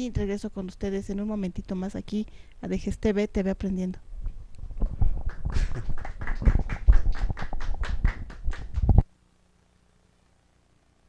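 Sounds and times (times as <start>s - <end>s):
people clapping: 5.0s - 9.0s.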